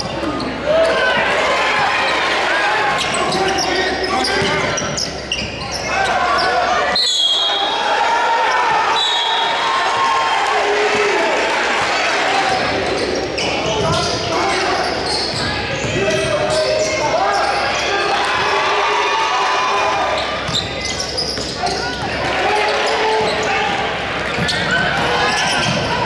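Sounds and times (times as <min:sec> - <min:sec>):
basketball bouncing on court: 0:23.1 - 0:26.0.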